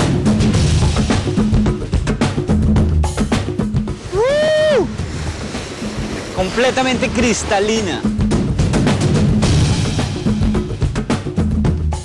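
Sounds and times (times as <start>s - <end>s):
boat moving on water: 0.0s - 12.0s
person whooping: 4.1s - 4.9s.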